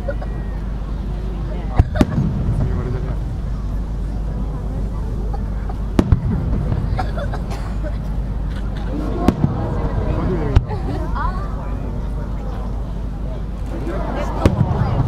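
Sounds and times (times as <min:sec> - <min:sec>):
people talking: 0:00.0 - 0:15.0.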